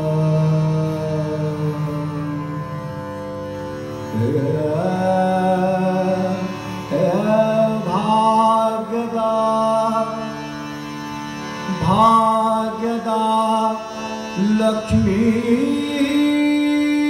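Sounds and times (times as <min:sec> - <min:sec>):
male singer holding long notes: 0:00.0 - 0:03.0, 0:04.1 - 0:17.0
harmonium: 0:00.0 - 0:17.0
tanpura drone: 0:00.0 - 0:17.0.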